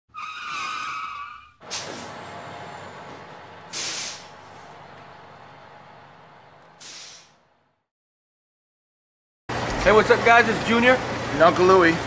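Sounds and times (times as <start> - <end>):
air brake hiss: 1.7 - 2.2, 3.7 - 4.4, 6.8 - 7.4.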